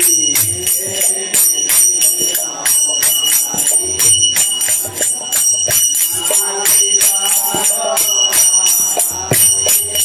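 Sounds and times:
drum beats: 0.0s - 10.0s
hand cymbals clashing: 0.0s - 10.0s.

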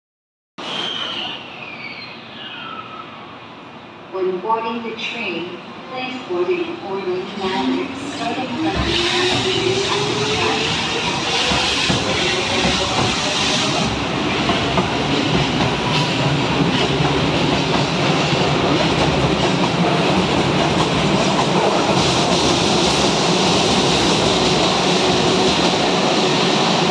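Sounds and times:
train wheels rushing on rail: 7.2s - 26.9s.

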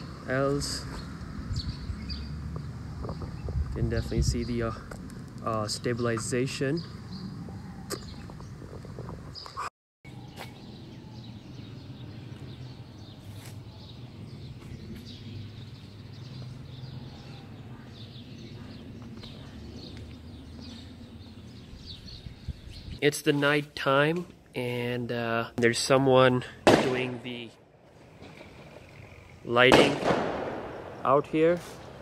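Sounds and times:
low outdoor background noise: 0.0s - 32.0s.

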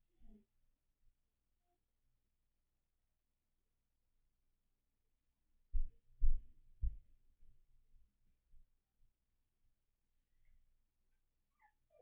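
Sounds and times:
dull low thumps: 5.8s - 7.2s.

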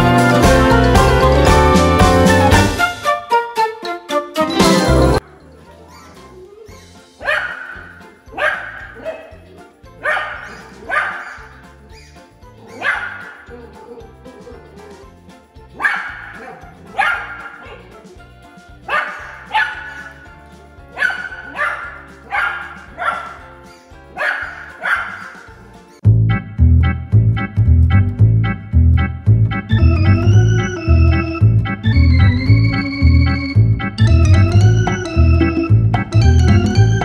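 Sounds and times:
background music: 0.0s - 37.0s
small dog barking: 7.2s - 9.4s, 10.0s - 11.6s, 12.6s - 15.0s, 15.8s - 17.9s, 18.9s - 20.2s, 21.0s - 23.4s, 24.1s - 25.4s.

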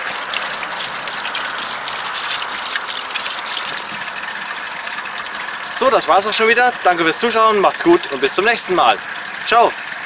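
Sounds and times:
water splashing over hands: 0.0s - 9.3s
fountain water running: 0.0s - 10.0s.

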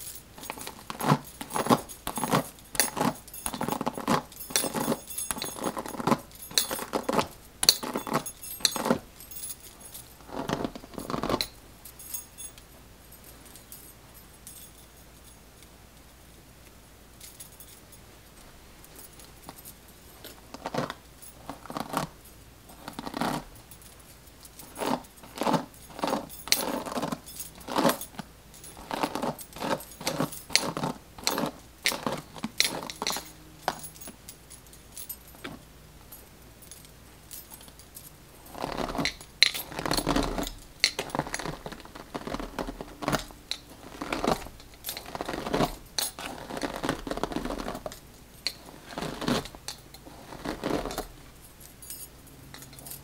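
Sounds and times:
bracelets jingling: 0.0s - 15.5s, 17.2s - 53.0s.

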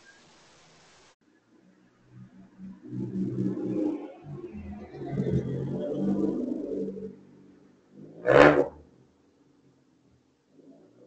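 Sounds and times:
passing car engine: 8.0s - 8.8s.

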